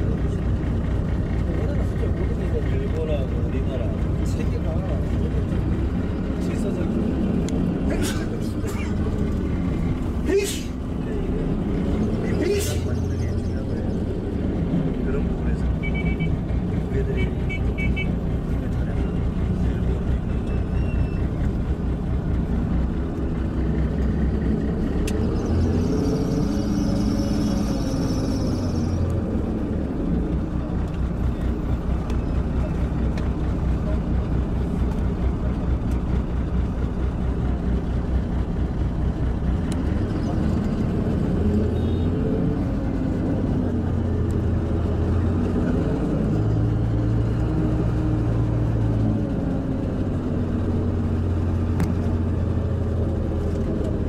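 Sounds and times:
bus engine rumble: 0:00.0 - 0:54.0.

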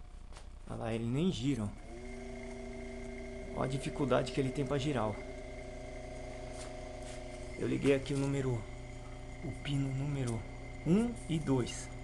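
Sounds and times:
electric motor humming: 0:01.5 - 0:12.0.

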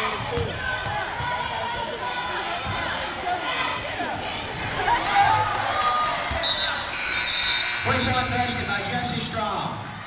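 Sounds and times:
crowd background noise: 0:00.0 - 0:10.0
man on public-address system: 0:07.8 - 0:09.9.

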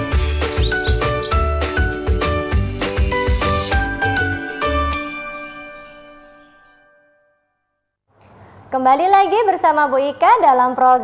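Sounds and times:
upbeat jingle music: 0:00.2 - 0:07.3.

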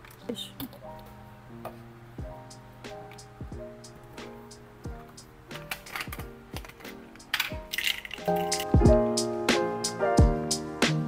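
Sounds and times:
background music with a beat: 0:02.2 - 0:11.0
pills clicking into plastic organizer: 0:05.6 - 0:08.7.

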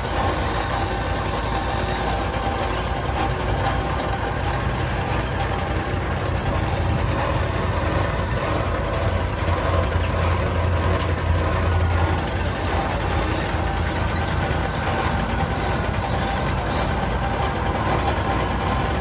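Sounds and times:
sawmill engine running: 0:00.0 - 0:19.0.

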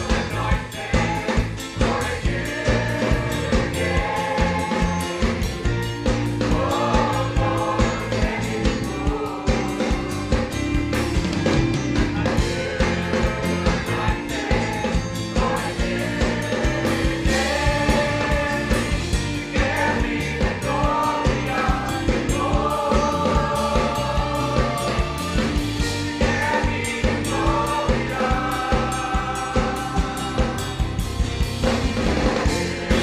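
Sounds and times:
band accompaniment: 0:00.0 - 0:33.0
choir singing gospel song: 0:00.0 - 0:33.0
drums steady beat: 0:00.0 - 0:33.0.

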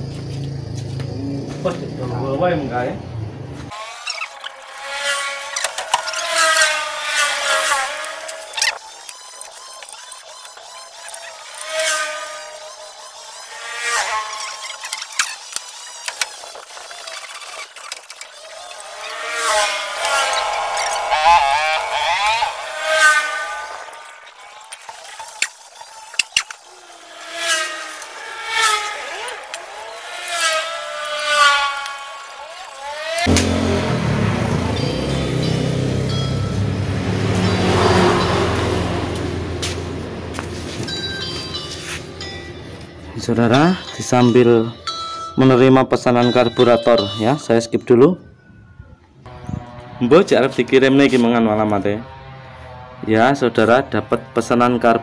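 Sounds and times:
high-pitched gliding tones: 0:03.7 - 0:48.6.

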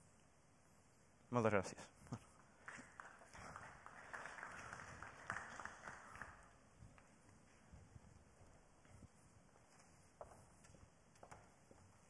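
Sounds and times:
faint applause: 0:02.6 - 0:06.6.

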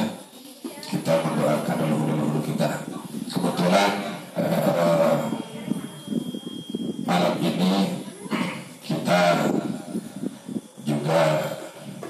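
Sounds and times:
man reciting prayer: 0:00.0 - 0:06.2, 0:07.0 - 0:12.0.

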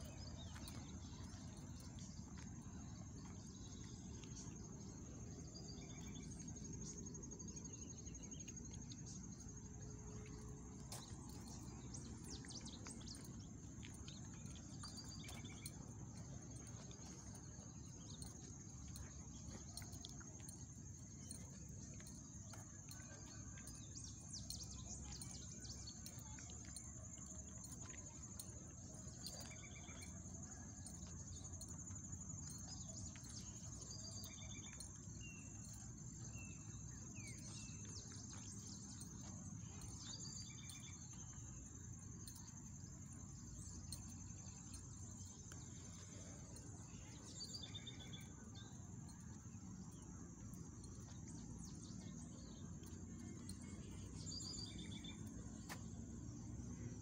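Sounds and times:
high-pitched insect trill: 0:00.0 - 0:57.0.

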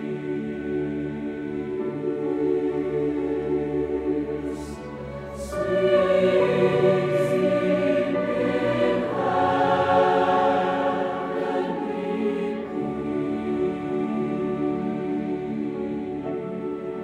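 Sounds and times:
choir singing with orchestra: 0:00.0 - 0:17.0.

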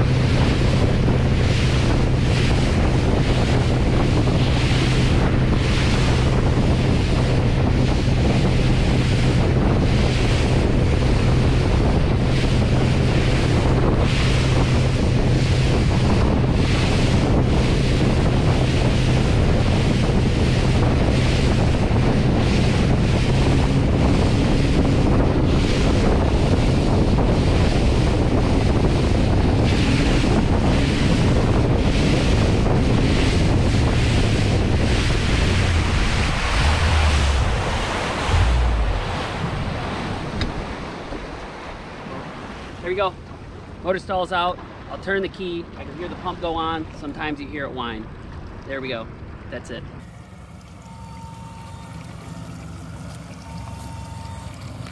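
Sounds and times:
outboard motor droning: 0:00.0 - 0:54.9
rushing water: 0:00.0 - 0:54.9
wind buffeting on microphone: 0:00.0 - 0:54.9.

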